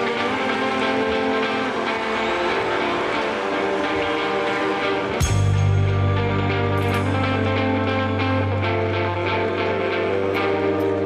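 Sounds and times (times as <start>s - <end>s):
distorted electric guitar drone: 0.0s - 11.0s.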